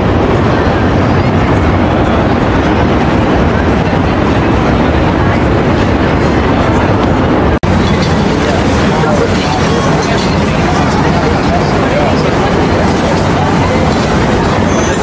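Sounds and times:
passing train rumble: 0.0s - 15.0s.

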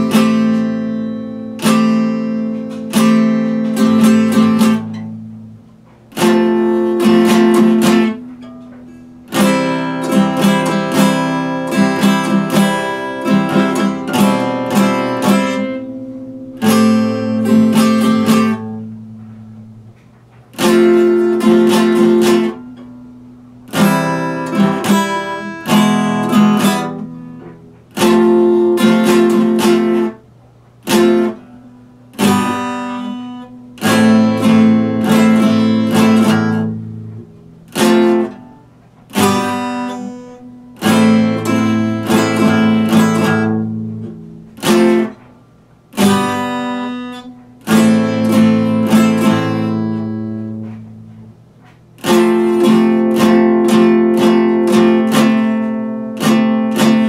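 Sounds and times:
acoustic guitar chords: 0.0s - 57.0s.

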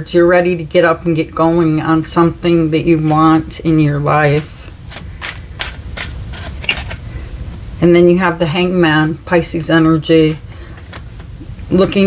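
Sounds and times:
cards scraping and flicking: 4.3s - 7.1s.

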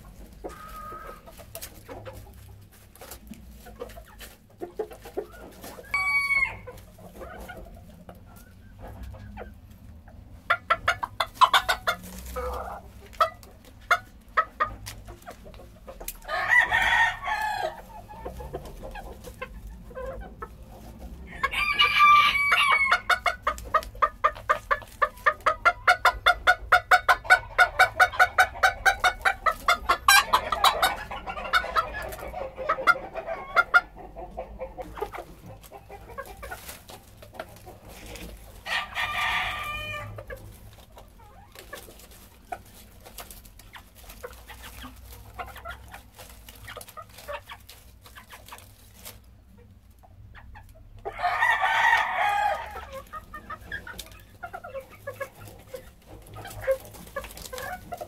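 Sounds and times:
chickens clucking rapidly: 0.0s - 58.0s
rooster crowing: 5.9s - 6.7s, 16.2s - 17.8s, 21.2s - 23.1s, 38.7s - 40.2s, 51.1s - 52.8s.

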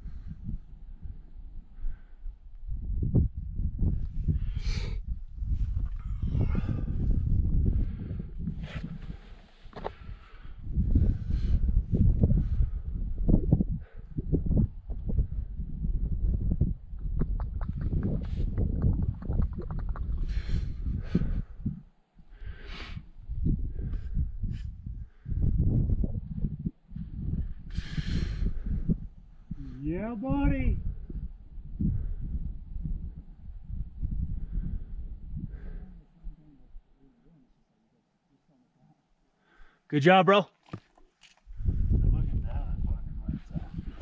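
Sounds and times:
wind buffeting microphone: 0.0s - 36.5s, 41.4s - 44.0s
heavy breathing: 6.0s - 11.7s, 20.0s - 23.1s, 27.7s - 29.9s.

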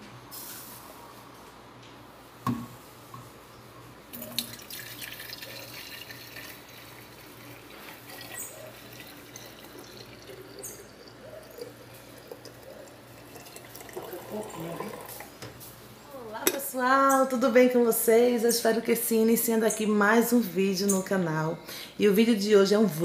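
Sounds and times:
coffee trickling and splashing: 4.1s - 15.7s.

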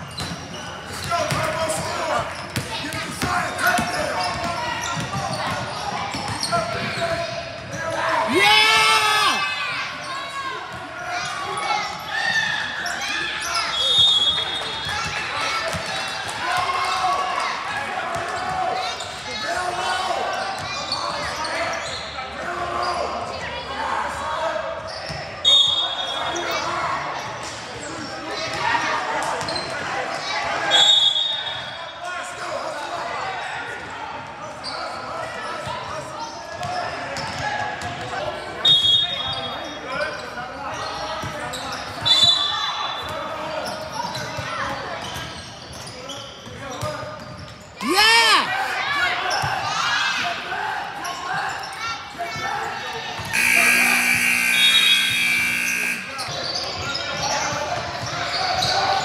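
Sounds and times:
sneaker squeaks on hardwood: 0.0s - 1.5s, 2.4s - 7.8s, 53.2s - 59.0s
loud shout: 7.9s - 14.2s, 47.8s - 50.7s
loud steady buzzer: 53.3s - 56.3s
echoing indistinct voices: 53.3s - 57.2s.

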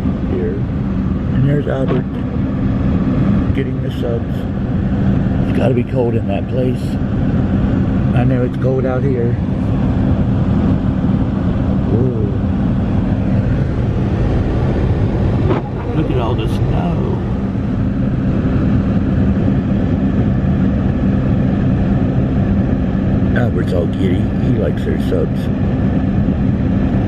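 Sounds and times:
faint voices: 15.4s - 17.6s, 23.4s - 25.5s.

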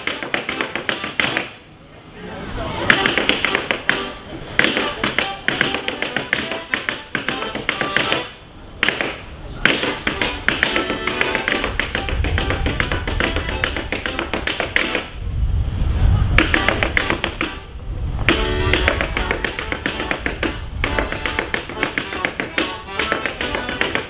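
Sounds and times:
clogs tapping on stage floor: 4.6s - 15.1s, 18.3s - 24.0s.

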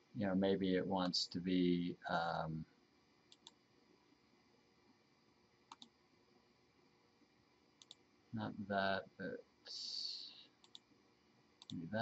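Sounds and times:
computer mouse clicks: 3.3s - 3.6s, 5.7s - 6.0s, 7.8s - 8.0s, 10.6s - 10.9s, 11.6s - 11.8s.

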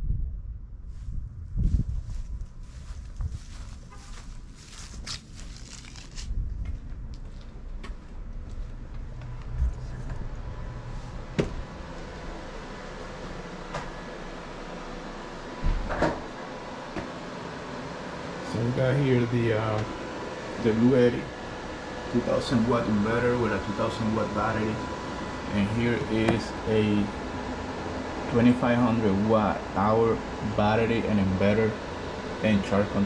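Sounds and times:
wind on microphone: 0.0s - 3.7s
low hum: 0.0s - 33.0s
footsteps: 0.8s - 10.3s
door opening and shutting: 15.6s - 16.3s.

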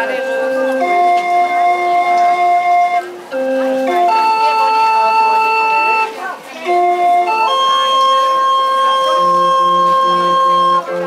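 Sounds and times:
barrel organ playing pop tune: 0.0s - 11.0s.

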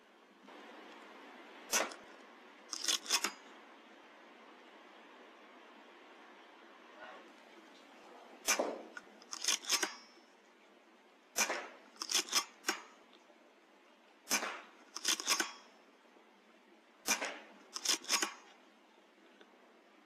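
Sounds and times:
air rifle shot crack: 1.7s - 2.1s, 8.4s - 9.0s, 11.3s - 11.8s, 14.3s - 15.4s, 17.0s - 17.6s
metallic clicks of rifle action: 1.7s - 3.5s, 8.4s - 10.2s, 11.4s - 13.2s, 14.3s - 15.8s, 17.0s - 18.6s.

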